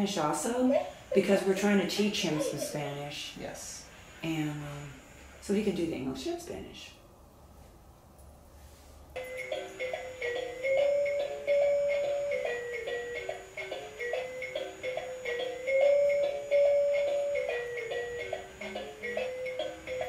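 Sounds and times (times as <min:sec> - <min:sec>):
toy beeping melody: 0:09.2 - 0:20.0.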